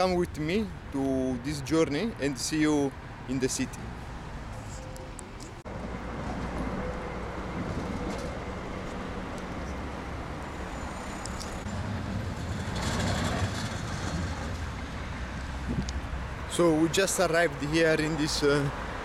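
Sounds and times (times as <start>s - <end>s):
street traffic: 0.0s - 19.0s
tram going by: 3.8s - 19.0s.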